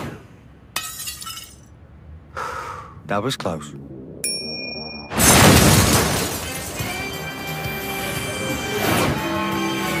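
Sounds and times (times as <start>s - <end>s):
loud crash: 5.1s - 6.8s.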